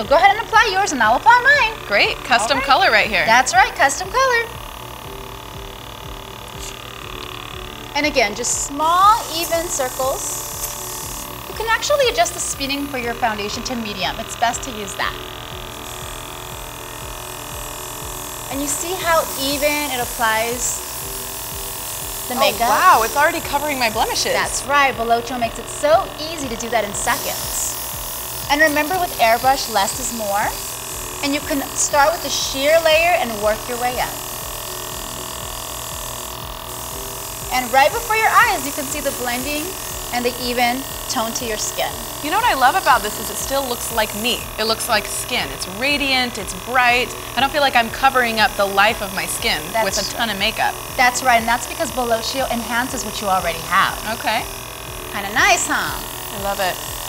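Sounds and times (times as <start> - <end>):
small compressor humming: 0.0 - 57.0.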